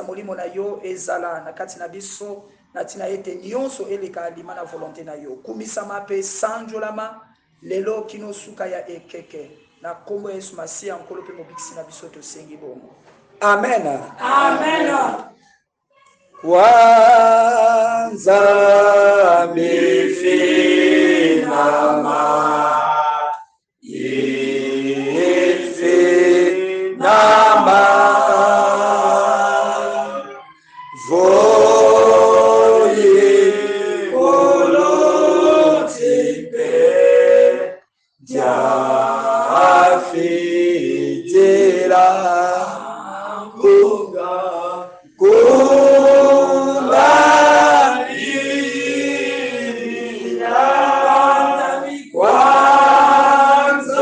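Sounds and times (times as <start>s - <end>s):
group of voices singing a hymn: 14.1s - 15.5s, 16.4s - 54.0s.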